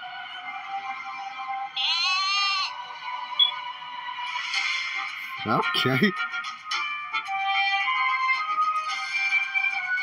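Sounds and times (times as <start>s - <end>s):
background music: 0.0s - 10.0s
goat bleat: 1.8s - 2.7s.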